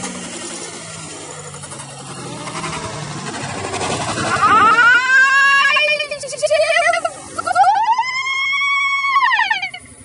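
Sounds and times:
person screaming: 4.2 - 6.2, 7.4 - 9.8.

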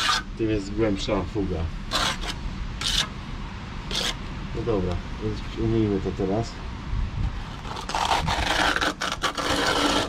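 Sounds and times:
trowel scraping tile adhesive: 0.0 - 0.2, 1.9 - 3.1, 3.9 - 4.2, 7.5 - 10.0
steady low rumble: 0.0 - 10.0.

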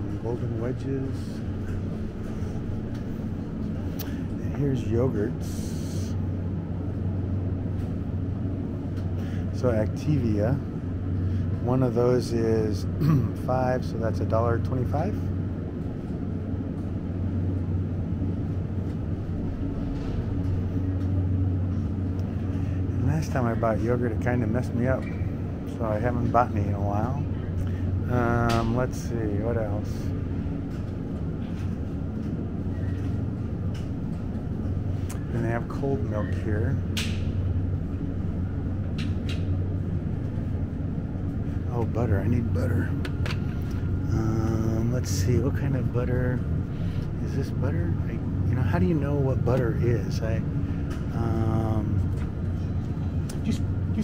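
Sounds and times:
refrigerated display cases humming: 0.0 - 54.0.

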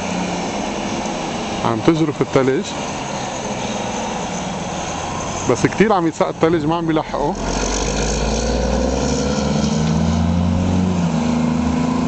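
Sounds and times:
diesel engine running: 0.0 - 12.0.

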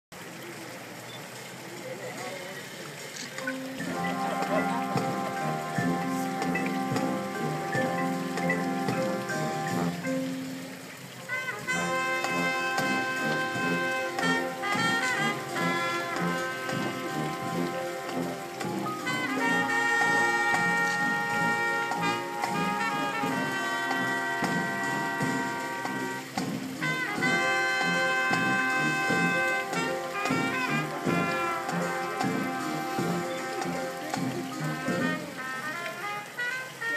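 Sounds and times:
brass and wind chords: 3.5 - 36.9
drum strikes: 3.7 - 10.5, 11.6 - 35.3.

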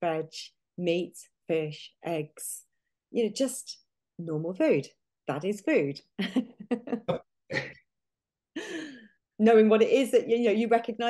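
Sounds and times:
woman laughing: 6.2 - 7.8.

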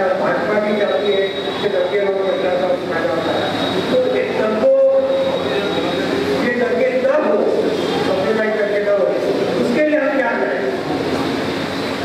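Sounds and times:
man talking over a pa system: 0.0 - 10.7
high electronic whine: 0.0 - 12.0.

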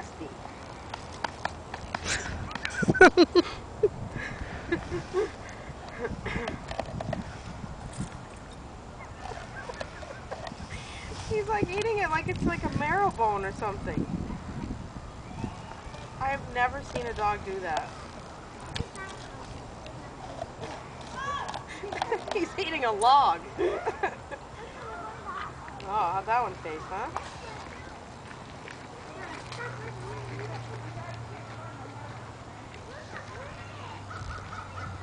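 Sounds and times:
dog teeth gnawing wood: 16.7 - 22.6.

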